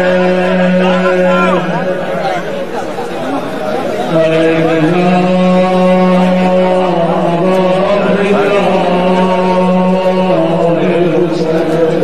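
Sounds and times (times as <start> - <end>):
man chanting: 0.0 - 2.4, 4.0 - 12.0.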